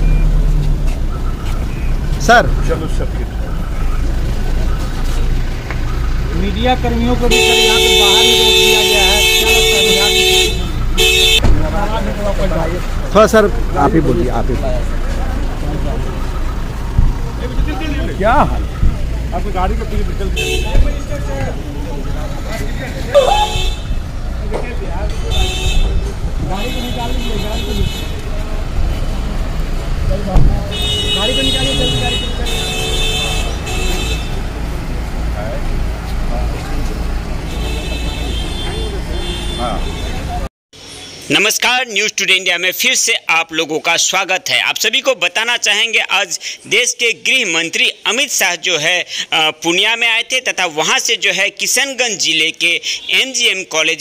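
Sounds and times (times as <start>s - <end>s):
car engine rumbling: 0.0s - 41.2s
man calling out: 6.7s - 11.3s.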